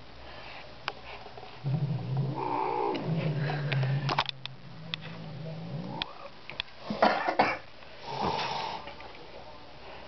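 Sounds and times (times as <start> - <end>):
cat growling and yowling: 1.7 - 3.9.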